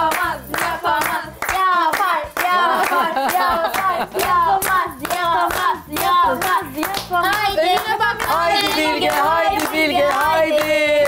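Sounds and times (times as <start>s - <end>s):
women chanting: 0.0s - 11.0s
women clapping in rhythm: 0.0s - 11.0s.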